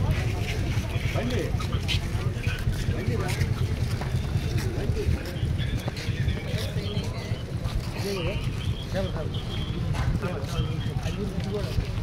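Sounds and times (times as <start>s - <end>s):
people talking: 0.0s - 12.0s
wind rumbling on microphone: 0.0s - 12.0s.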